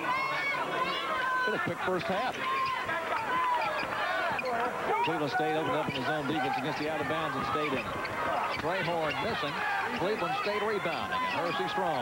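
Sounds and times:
crowd voices: 0:00.0 - 0:12.0
sneakers squeaking on hardwood: 0:02.4 - 0:05.2, 0:05.8 - 0:11.4.

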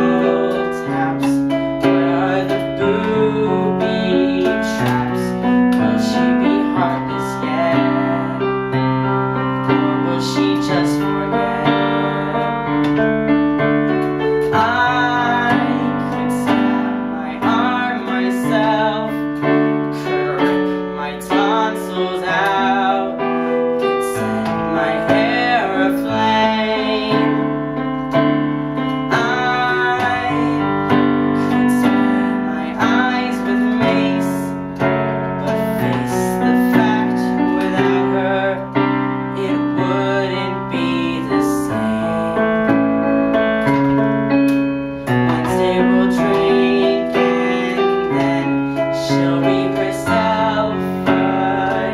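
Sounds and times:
man singing with vibrato: 0:00.0 - 0:28.1, 0:28.8 - 0:43.8, 0:45.0 - 0:51.9
piano accompaniment: 0:00.0 - 0:51.9.

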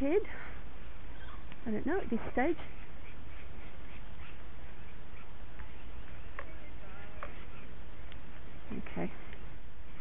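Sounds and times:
bat squawking: 0:02.6 - 0:08.7.

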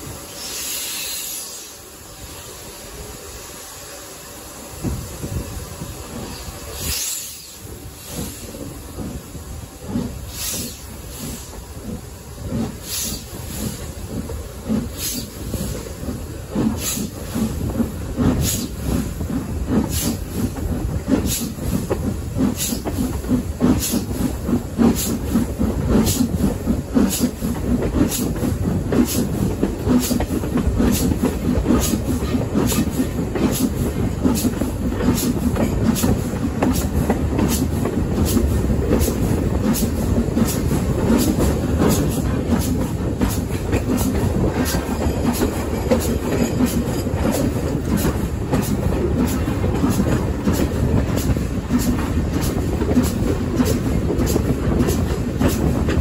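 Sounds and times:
train rumbling in motion: 0:00.0 - 0:56.0
wheels clicking over rail joints: 0:11.8 - 0:56.0.

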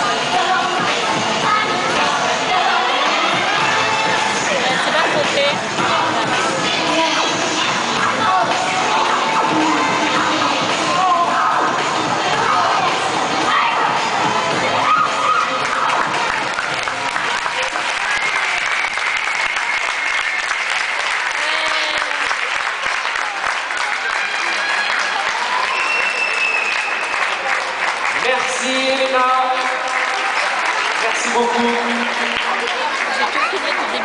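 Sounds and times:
music: 0:00.0 - 0:19.2
audience applauding: 0:15.4 - 0:34.0.

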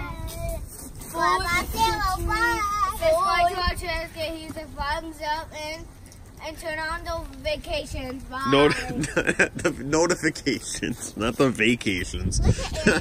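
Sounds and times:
children calling in sing-song: 0:00.0 - 0:05.6.

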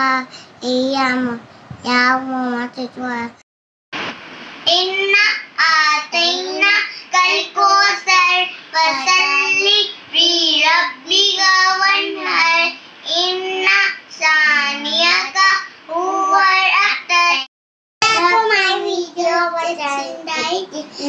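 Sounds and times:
girl singing unaccompanied: 0:04.6 - 0:21.0.

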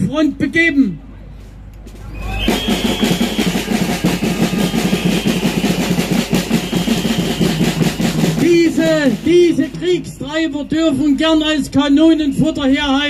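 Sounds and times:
man's amplified voice: 0:00.0 - 0:01.0, 0:08.4 - 0:13.0
fast drum roll: 0:02.2 - 0:10.1.

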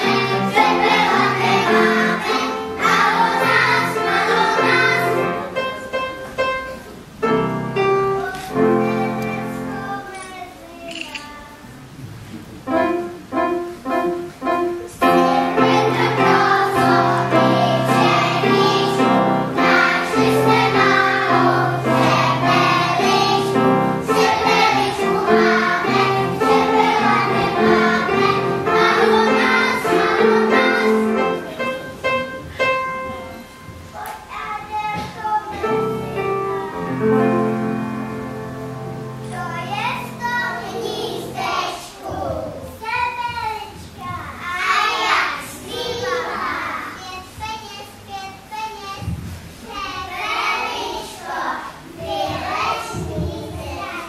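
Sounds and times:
instrumental accompaniment: 0:00.0 - 0:11.4, 0:12.4 - 0:34.0
children's choir singing: 0:00.0 - 0:11.5, 0:12.7 - 0:34.3, 0:34.9 - 0:43.2, 0:44.4 - 0:47.0, 0:49.5 - 0:54.0.

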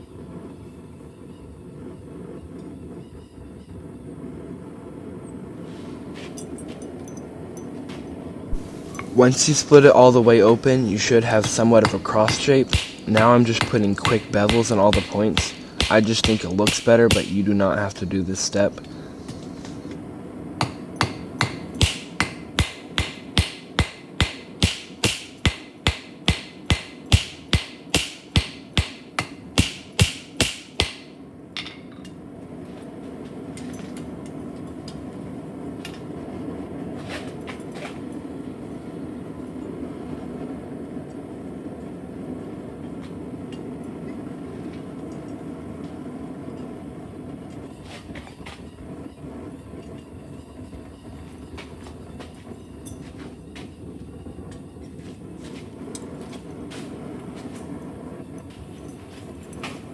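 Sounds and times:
steady low rumble: 0:00.0 - 0:59.9
hammer striking metal on anvil: 0:11.4 - 0:17.3, 0:20.6 - 0:32.1.

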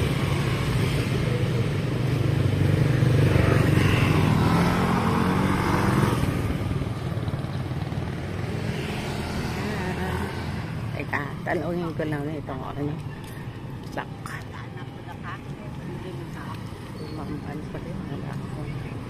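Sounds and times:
scooter engines passing by: 0:00.0 - 0:19.0.

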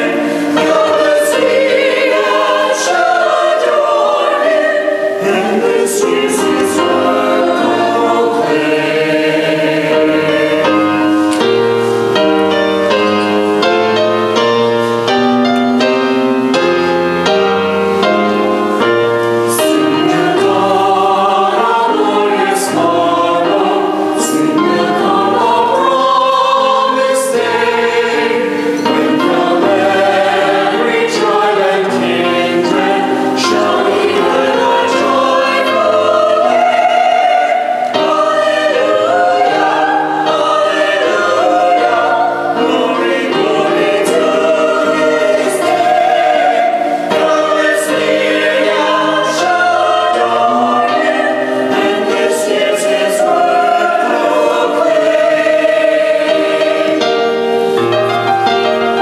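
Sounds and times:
choir singing in harmony: 0:00.0 - 0:59.0.

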